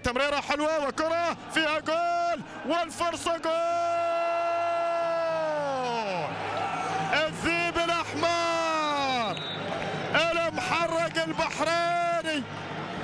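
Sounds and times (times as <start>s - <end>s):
commentator shouting: 0.0s - 6.3s.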